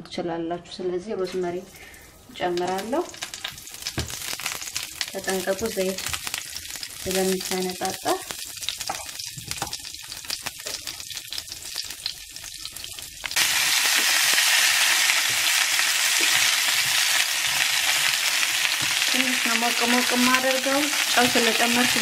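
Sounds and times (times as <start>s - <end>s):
herbs crackling in hot oil: 1.5s - 22.0s
potatoes sizzling in oil: 1.7s - 22.0s.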